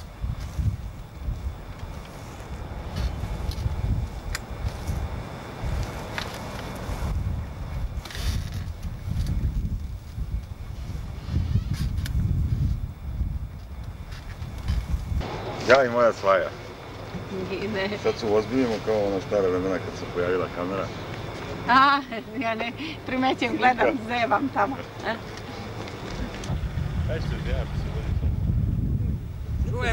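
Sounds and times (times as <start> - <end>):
wind buffeting microphone: 0.0 - 20.0, 20.7 - 29.9.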